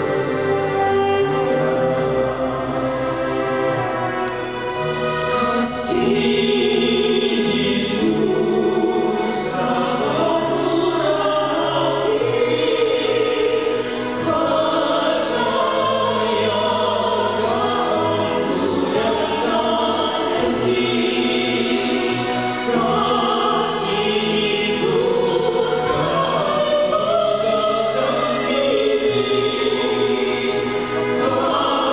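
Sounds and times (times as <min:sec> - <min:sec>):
large choir singing: 0:00.0 - 0:31.9.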